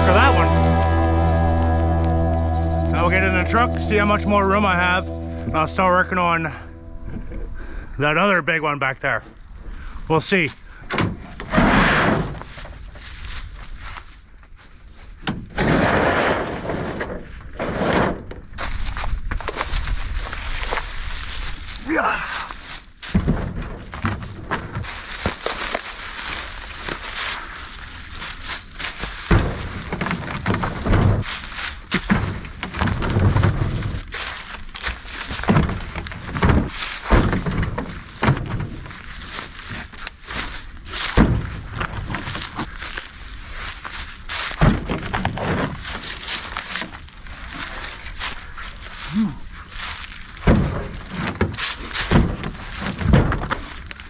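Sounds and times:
footsteps in dry leaves: 12.9s - 14.3s, 18.6s - 23.1s, 24.7s - 29.3s, 31.2s - 31.9s, 33.8s - 35.5s, 38.9s - 41.2s, 42.2s - 44.6s, 45.8s - 50.4s
logs thudding into truck bed: 35.4s - 38.8s, 41.1s - 42.2s, 44.6s - 45.9s, 50.4s - 53.6s.

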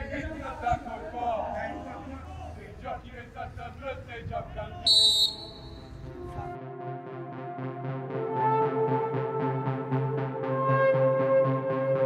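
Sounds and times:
high-pitched whistle blast: 4.9s - 6.0s
background music with held notes: 6.1s - 12.0s.

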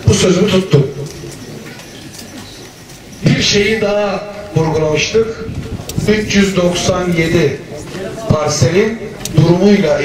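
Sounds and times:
birds calling: 0.0s - 4.6s.

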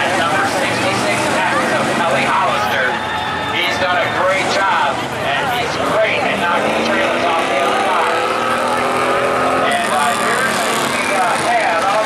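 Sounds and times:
race car engines revving: 0.0s - 12.0s
spectators talking: 0.0s - 12.0s.

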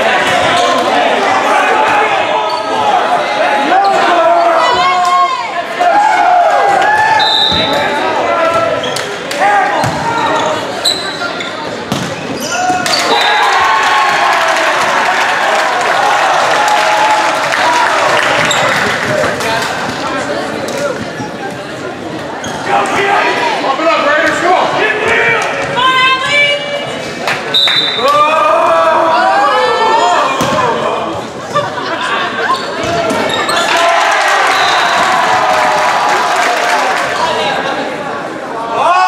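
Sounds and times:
volleyball thuds and bounces: 11.9s - 12.2s
people shouting and calling out: 22.5s - 39.0s.

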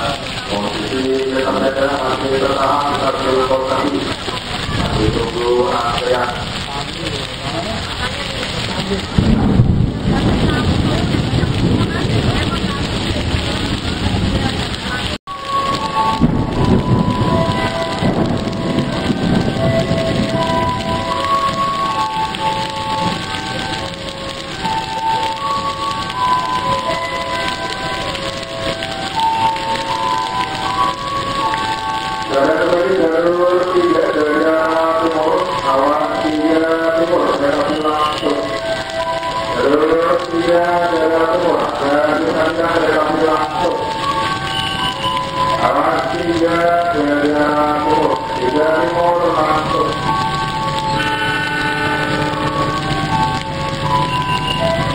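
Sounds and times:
heavy rain falling: 0.0s - 54.9s
wavering music melody: 15.3s - 54.9s.

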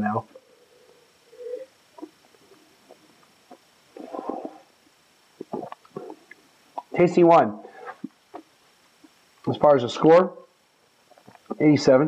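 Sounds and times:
man sipping and slurping wine: 4.0s - 4.6s.

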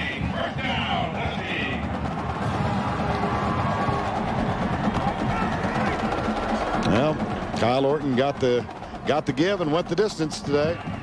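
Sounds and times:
crowd noise: 0.0s - 11.0s
drums playing rhythmic beat: 0.0s - 11.0s.

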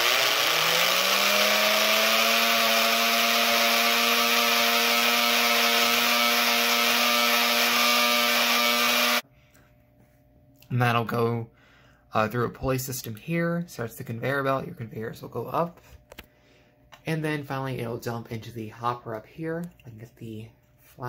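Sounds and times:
electric motor whining: 0.0s - 9.2s.

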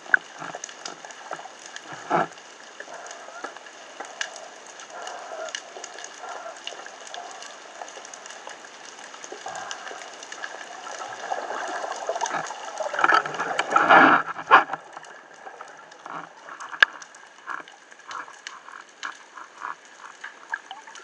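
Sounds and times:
underwater crackling of tiny clicks: 0.0s - 21.0s.

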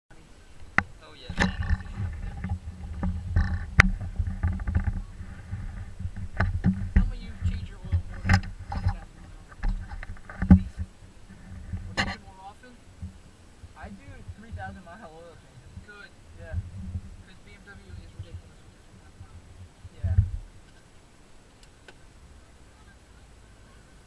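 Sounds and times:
car engine idling: 0.1s - 24.0s
sharp knocks and bumps: 0.6s - 12.2s.

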